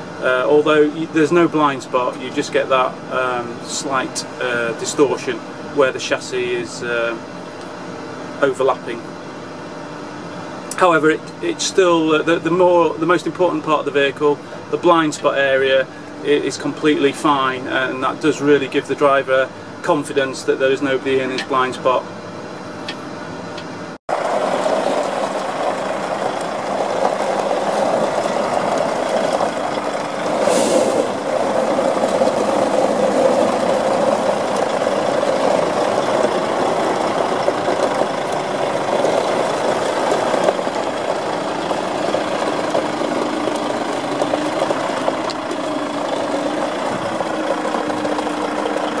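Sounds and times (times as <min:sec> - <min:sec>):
diesel truck engine idling: 0:24.1 - 0:49.0
short hiss: 0:30.4 - 0:31.1.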